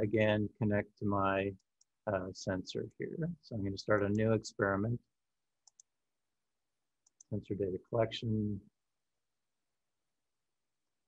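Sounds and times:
computer mouse clicks: 5.6 - 5.9.

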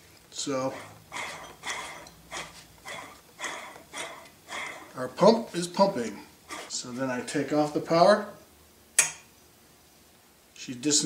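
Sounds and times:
air pump puffing: 0.6 - 5.0, 6.4 - 6.8.

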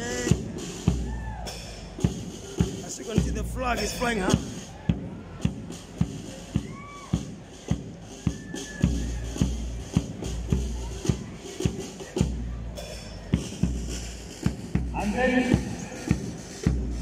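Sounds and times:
bass drum beating: 0.0 - 17.0
marching band playing: 0.0 - 17.0.

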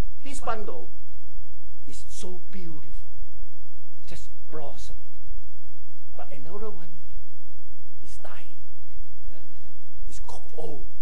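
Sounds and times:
steady low hum: 0.0 - 11.0
man speaking softly: 1.9 - 3.1, 4.0 - 5.2, 6.1 - 7.1, 8.0 - 8.7, 10.1 - 10.9.

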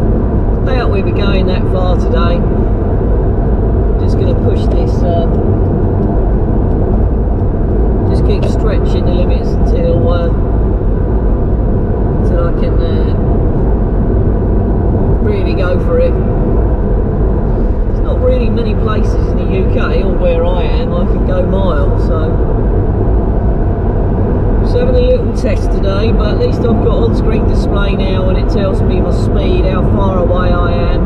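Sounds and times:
road and engine rumble: 0.0 - 31.0.

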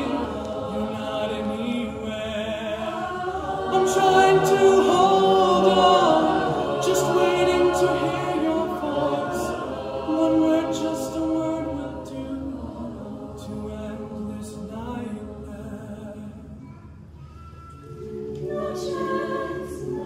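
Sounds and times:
male soloist singing: 0.0 - 12.6
a cappella choir harmonies: 0.0 - 16.8, 17.6 - 20.0.

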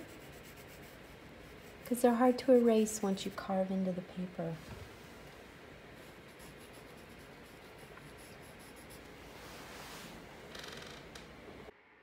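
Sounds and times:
pencil scratching on paper: 0.0 - 3.1, 6.0 - 9.2.

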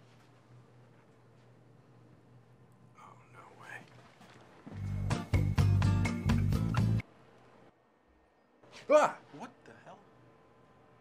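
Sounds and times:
faint whispering: 2.9 - 4.0.

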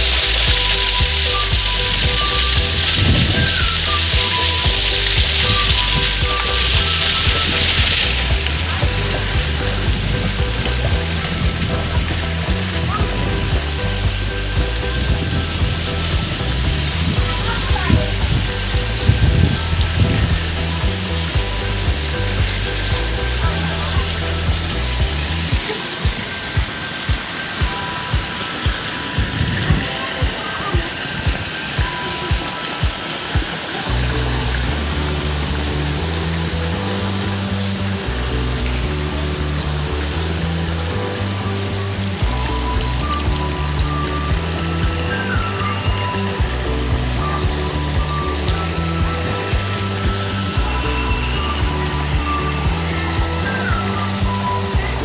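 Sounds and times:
background music with steady beat: 0.0 - 55.0
stepping bass line: 0.0 - 55.0.

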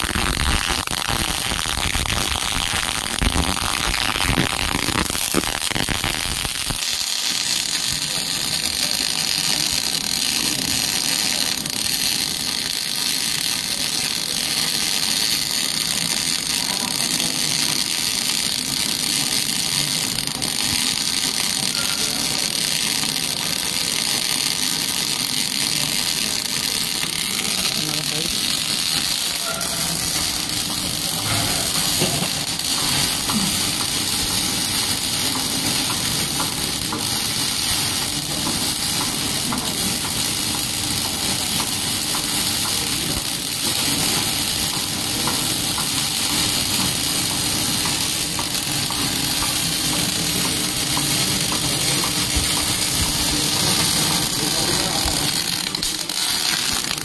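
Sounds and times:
welding arc crackling and hissing: 0.0 - 57.0.

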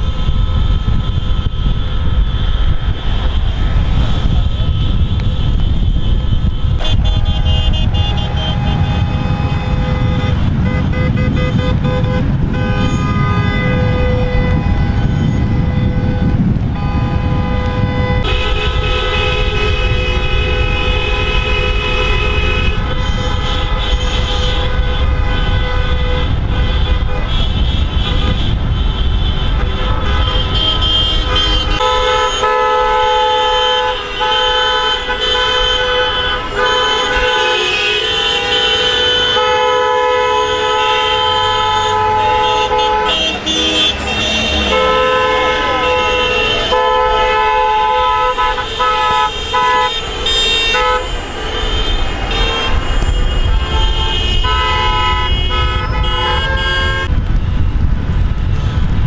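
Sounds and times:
car horns honking: 0.0 - 57.2
engine and road rumble: 0.0 - 59.0.

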